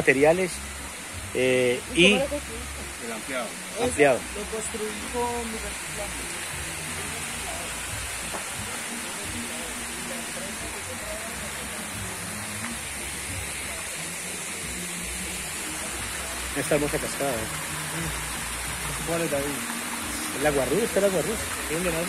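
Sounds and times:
water rushing over stones: 0.0s - 22.0s.

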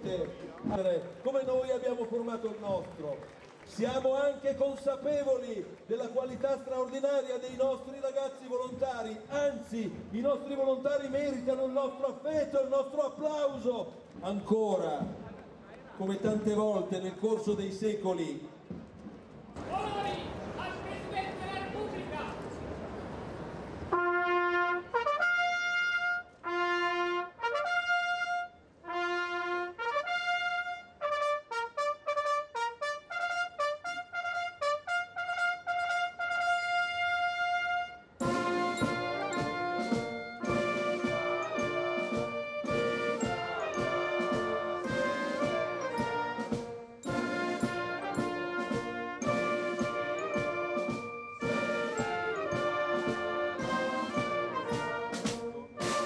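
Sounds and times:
brass band playing: 23.8s - 56.0s
trumpet call: 23.9s - 56.0s.

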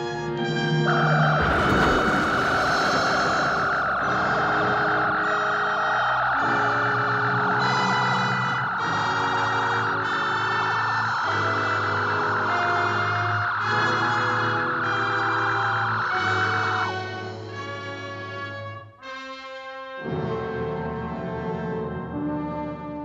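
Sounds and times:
wavering high laser whine: 0.7s - 18.4s
rushing hiss of beam firing: 1.5s - 17.3s.

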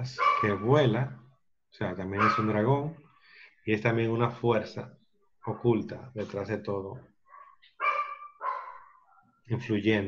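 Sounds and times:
dog barking: 0.1s - 0.7s, 2.2s - 2.6s, 7.3s - 9.3s.

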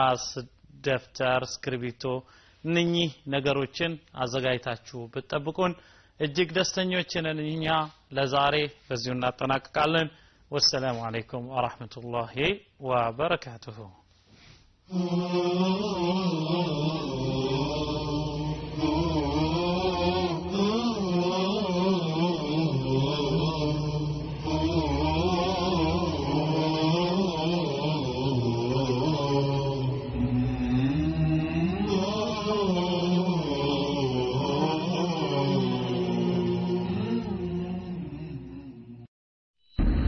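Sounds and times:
person chanting a wavering melody: 14.9s - 39.1s
steady low drone: 15.2s - 39.1s.

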